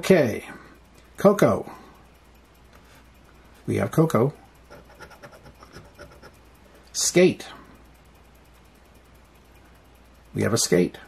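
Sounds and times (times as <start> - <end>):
coin scraping scratch card: 4.7 - 6.4.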